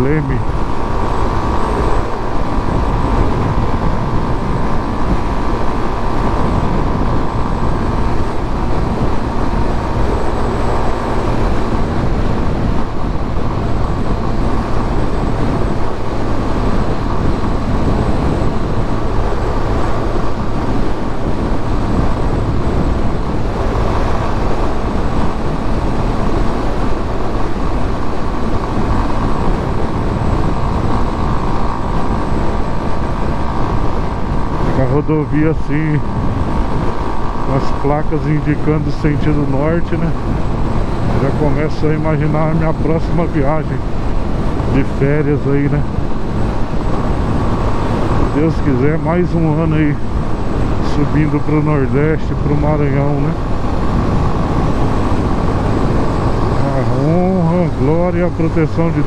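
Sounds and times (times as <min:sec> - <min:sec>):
motorcycle engine cruising: 0:00.0 - 0:59.0
wind rushing over microphone: 0:00.0 - 0:59.0.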